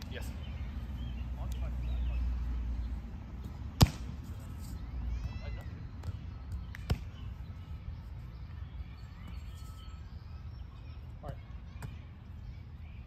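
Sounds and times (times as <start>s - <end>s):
volleyball struck by hand: 3.8s - 4.1s.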